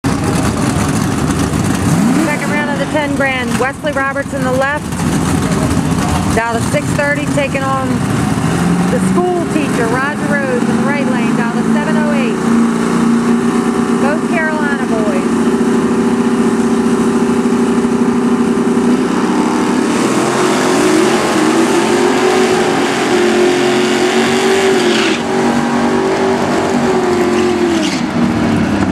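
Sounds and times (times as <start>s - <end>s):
cars accelerating away: 0.0s - 28.9s
drag racing cars revving: 0.0s - 28.9s.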